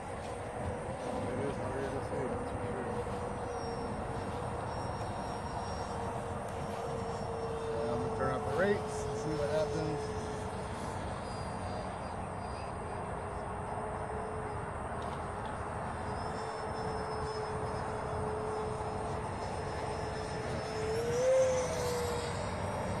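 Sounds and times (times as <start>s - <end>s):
model jet whine over hiss: 0.0s - 23.0s.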